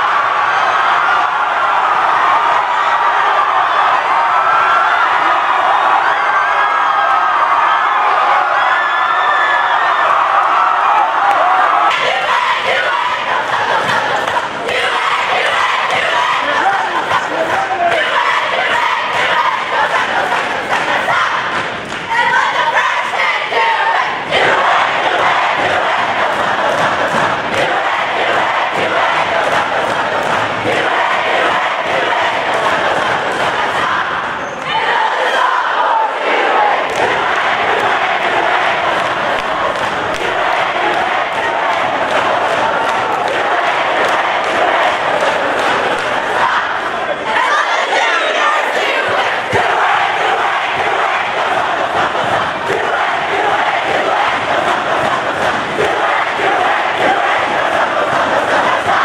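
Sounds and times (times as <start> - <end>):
crowd cheering and yelling: 0.0 - 59.0.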